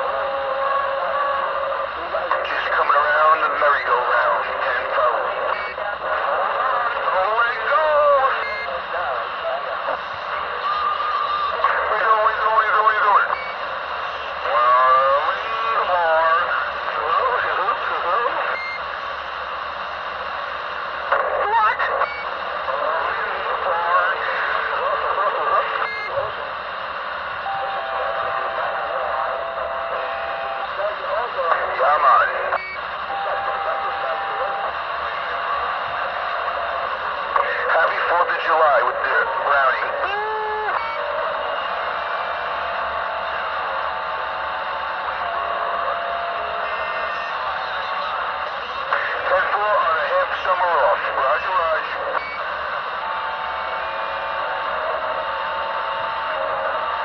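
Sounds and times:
garbled radio voices: 0.0s - 57.0s
radio static hiss: 0.0s - 57.0s.

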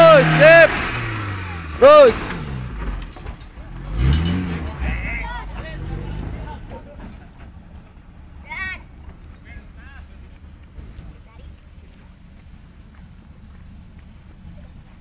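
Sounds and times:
jeep engine revving: 0.0s - 15.0s
people shouting: 4.7s - 6.9s.

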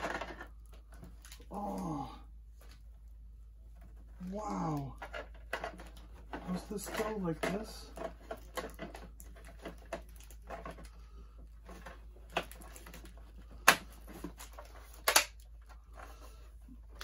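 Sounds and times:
plastic toy clicking and knocking: 5.0s - 10.8s, 11.7s - 15.4s
sharp plastic snaps: 12.3s - 15.5s.

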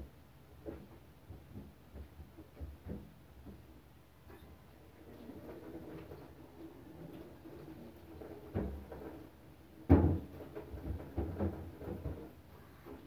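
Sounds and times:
dishes washed in metal sink: 4.8s - 13.0s.

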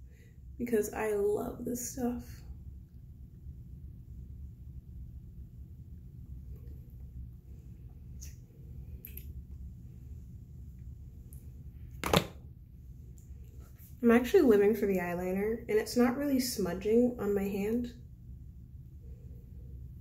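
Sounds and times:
low rumble: 2.4s - 14.0s.

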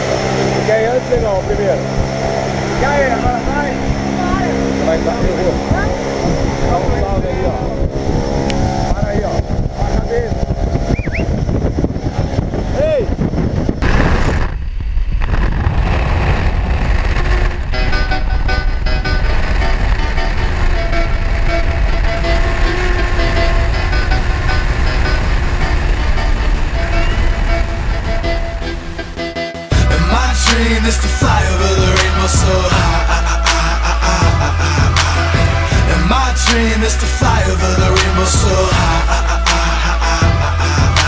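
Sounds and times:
wind rushing through open door: 0.0s - 29.4s
propeller plane engine: 0.0s - 41.0s
voices: 2.5s - 7.8s
music: 17.6s - 41.0s.

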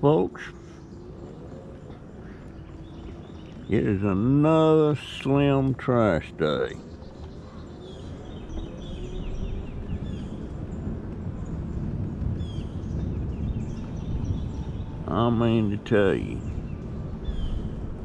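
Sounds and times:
birds chirping: 0.0s - 18.0s
mobility scooter rumble: 0.0s - 18.0s.

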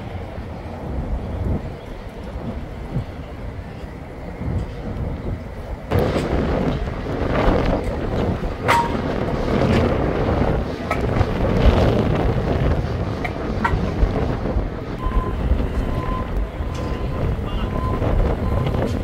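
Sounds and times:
traffic: 0.0s - 19.0s
wind buffeting microphone: 0.0s - 19.0s.

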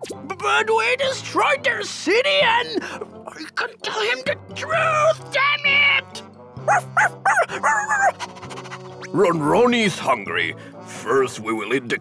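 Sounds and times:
background music: 0.0s - 12.0s
cartoon dog barking: 6.7s - 8.8s.

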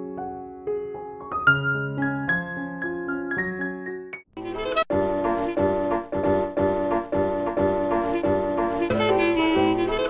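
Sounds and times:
music with repeated chords: 4.4s - 10.0s.

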